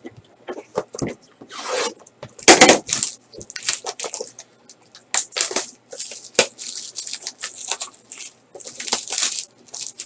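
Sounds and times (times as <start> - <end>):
plastic wrapping torn open: 2.5 - 4.4, 5.1 - 10.0.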